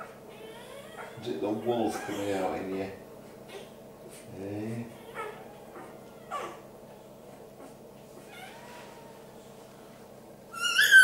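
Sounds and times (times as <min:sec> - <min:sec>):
puppy squeaking and squealing: 0:00.3 - 0:02.6, 0:04.9 - 0:06.6, 0:08.2 - 0:09.1, 0:10.5 - 0:11.0.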